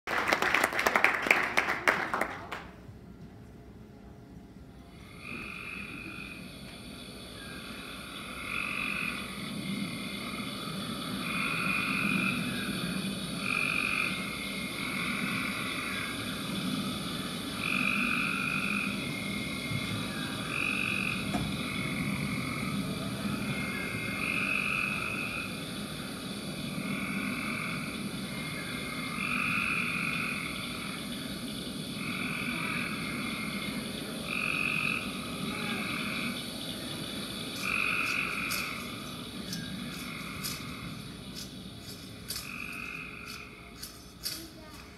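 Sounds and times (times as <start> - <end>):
steady background hiss: 0.1 - 44.9
frogs croaking: 4.6 - 44.9.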